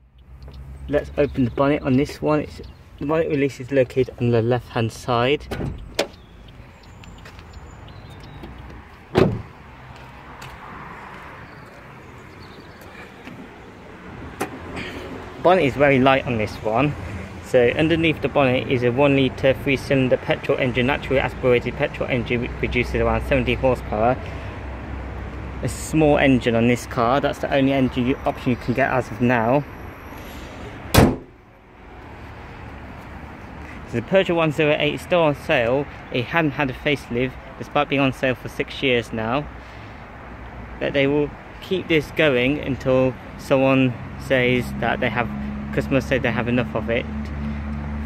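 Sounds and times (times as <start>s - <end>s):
outdoor background noise: 0.0s - 48.0s
car door shutting: 5.5s - 6.2s, 8.4s - 9.5s, 30.9s - 31.4s.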